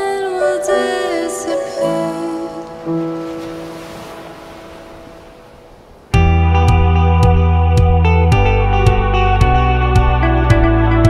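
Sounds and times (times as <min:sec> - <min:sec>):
soft music: 0:00.0 - 0:11.0
guitar and heavy bass music: 0:06.2 - 0:11.0.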